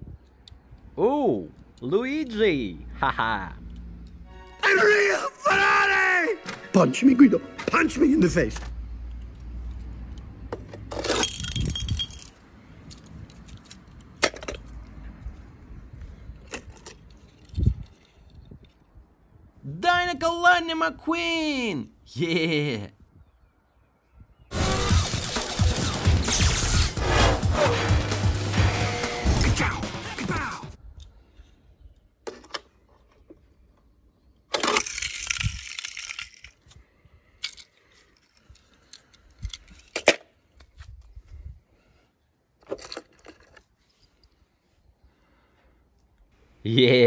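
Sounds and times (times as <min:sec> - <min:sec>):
background music: 0:04.2 - 0:08.6, 0:24.5 - 0:30.8
toy car clicking on stone paving: 0:34.5 - 0:36.8.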